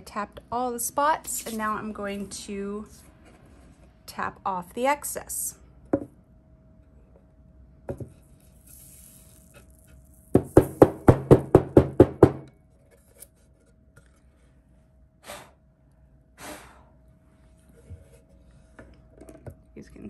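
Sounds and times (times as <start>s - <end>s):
glitter sliding hiss: 8.6s - 9.6s.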